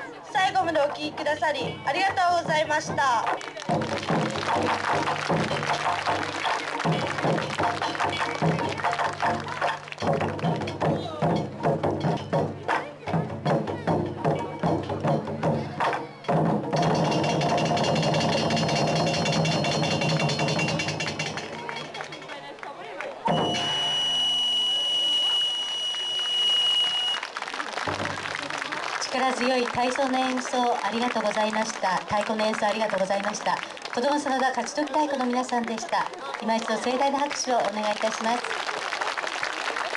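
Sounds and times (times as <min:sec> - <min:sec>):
taiko drums beating: 0:00.7 - 0:22.0, 0:23.3 - 0:23.8, 0:27.8 - 0:28.5.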